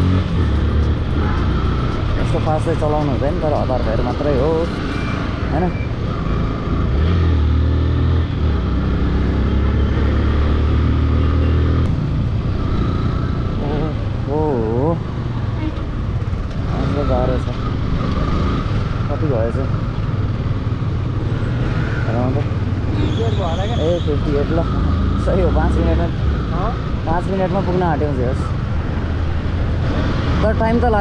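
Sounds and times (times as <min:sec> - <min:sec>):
motorcycle engine running: 0:00.0 - 0:04.7.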